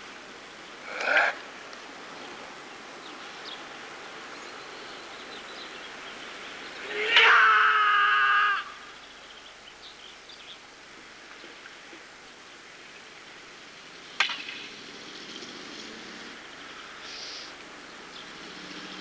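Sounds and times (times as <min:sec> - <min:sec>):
faint background noise: 0:00.0 - 0:19.0
swordsman shouting: 0:06.9 - 0:08.6.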